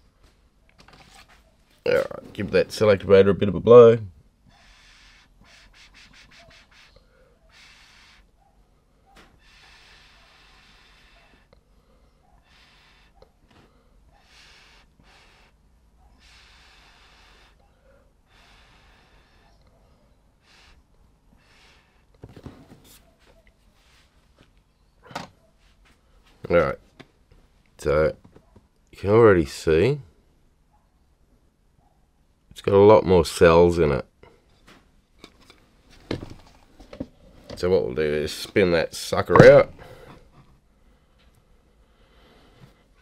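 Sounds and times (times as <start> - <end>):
breath puffs through a straw: 4.5 - 8.3, 9.2 - 11.5, 12.4 - 13.3, 14.2 - 19.6, 20.4 - 22.1.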